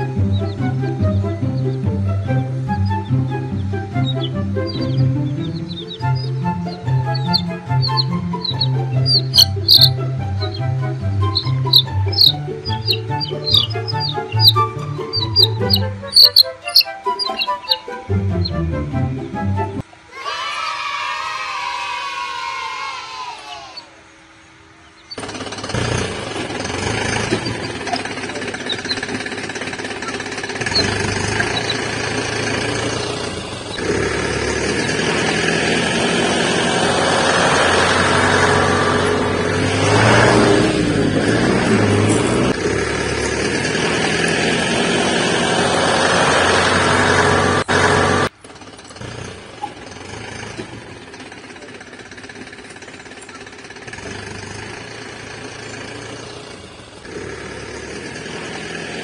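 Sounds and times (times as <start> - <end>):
loud rattling truck engine: 0.0 - 19.8, 25.0 - 59.0
steady engine-like drone: 0.0 - 20.1, 20.8 - 59.0.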